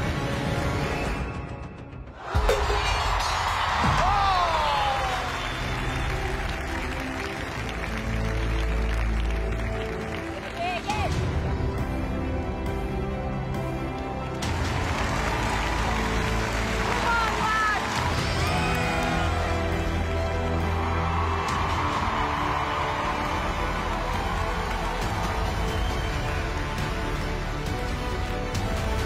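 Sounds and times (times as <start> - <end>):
background music: 0.0 - 29.0
audience applauding and cheering: 2.2 - 29.0.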